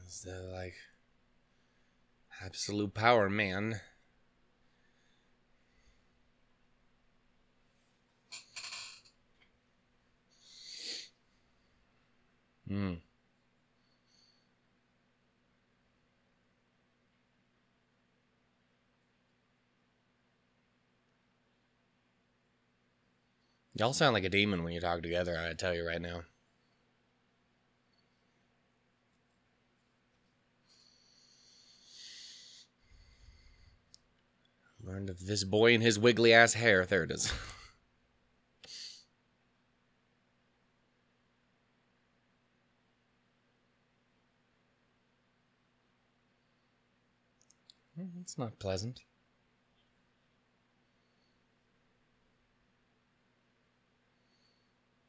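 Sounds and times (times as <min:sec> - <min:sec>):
person breathing into microphone: 0:30.7 - 0:33.8.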